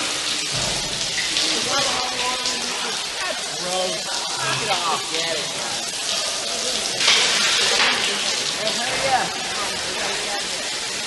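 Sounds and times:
shower water spraying on floor: 0.0s - 11.0s.

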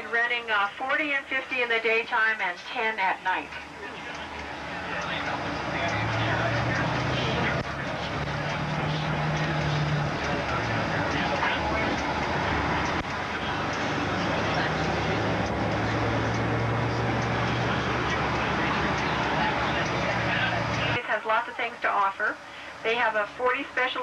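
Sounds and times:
bus engine droning: 0.0s - 24.0s
road noise inside cabin: 0.0s - 24.0s.

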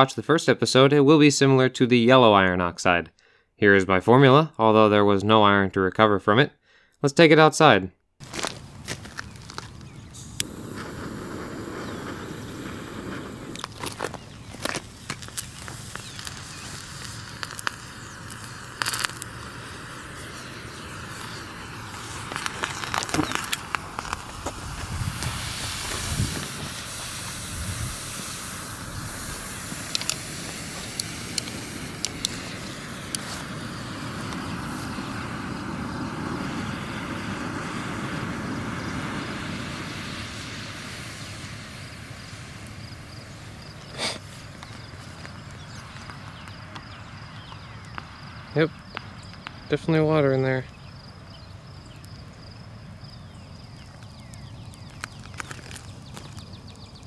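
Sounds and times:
sharp pops: 8.2s - 35.4s, 53.9s - 57.0s
thermite hissing and crackling: 8.2s - 57.0s.

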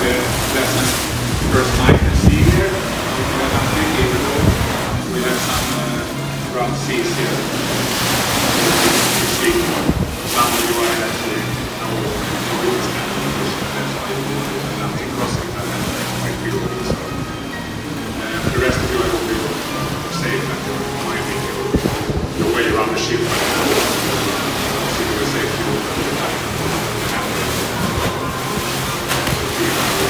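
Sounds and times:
wind gusting across microphone: 0.0s - 6.1s, 7.4s - 12.4s, 18.3s - 19.4s, 21.6s - 24.8s
indistinct voices: 0.0s - 30.0s
music: 0.0s - 30.0s.

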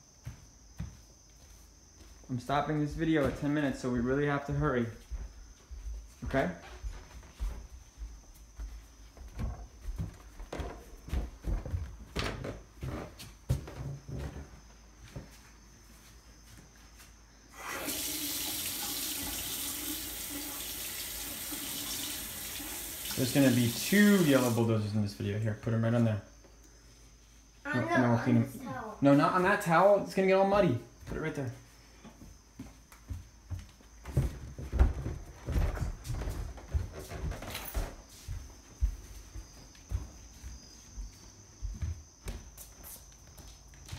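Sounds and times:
footsteps on hard floor: 0.1s - 2.3s, 2.9s - 3.7s, 4.9s - 17.2s, 31.0s - 43.9s
faucet water running: 17.5s - 24.7s.

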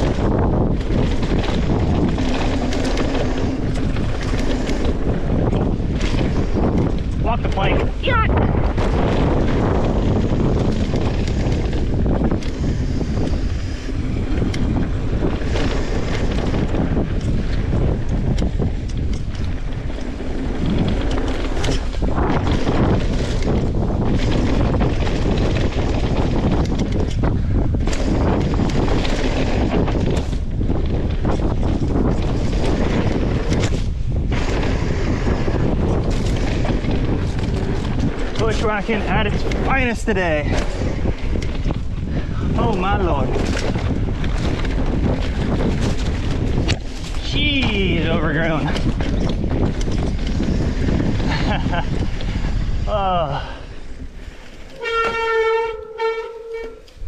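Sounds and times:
bike clicking and rattling: 0.0s - 57.0s
wind rushing over microphone: 0.0s - 57.0s.

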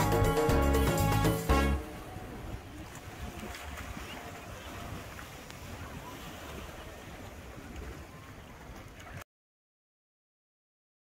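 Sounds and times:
ocean waves splashing: 0.0s - 9.2s
wind on microphone: 1.8s - 9.2s.

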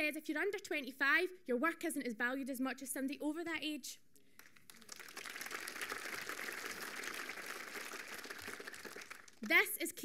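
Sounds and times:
audience applauding: 4.4s - 9.6s.

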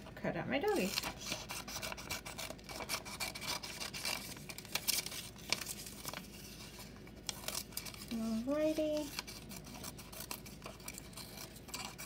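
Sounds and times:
scissors snipping paper: 0.7s - 6.2s, 7.2s - 12.0s
paper rustling: 0.8s - 12.0s.

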